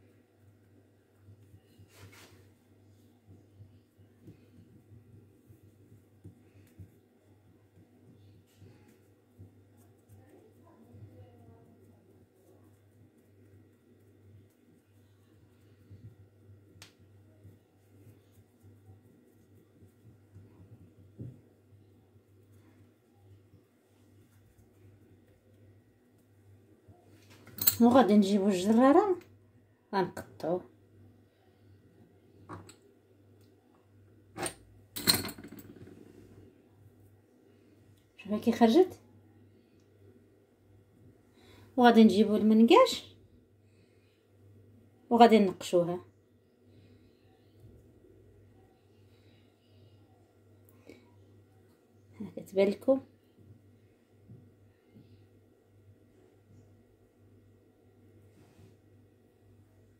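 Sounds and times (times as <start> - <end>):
low room tone hum: 0.0 - 59.9
hands pressing pastry dough: 3.2 - 23.0.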